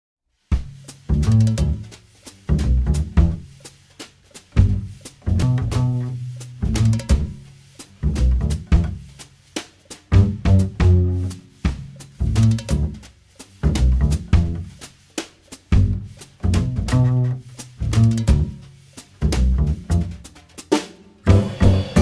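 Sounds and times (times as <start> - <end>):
drum and percussion hits: 0.5 - 22.0
band playing: 0.6 - 3.6, 4.5 - 9.2, 10.1 - 14.9, 15.7 - 22.0
deep bass notes: 0.6 - 3.7, 4.5 - 9.2, 10.1 - 14.9, 15.7 - 20.4, 21.3 - 22.0.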